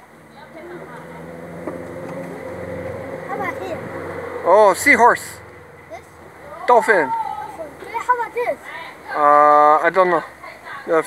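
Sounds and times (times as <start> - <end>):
vehicle engine running: 0.0 - 10.7.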